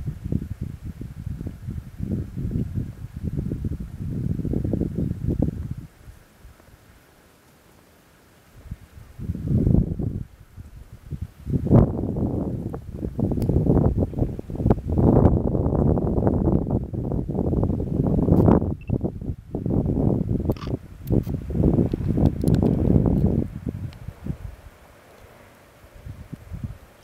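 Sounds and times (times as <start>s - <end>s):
wind gusts on microphone: 0.0s - 7.0s, 8.5s - 27.0s.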